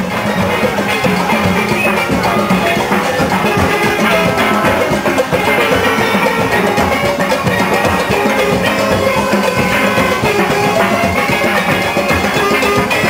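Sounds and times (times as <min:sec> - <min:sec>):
drums and percussion beat: 0:00.0 - 0:13.0
steel pans playing melody: 0:00.0 - 0:13.0.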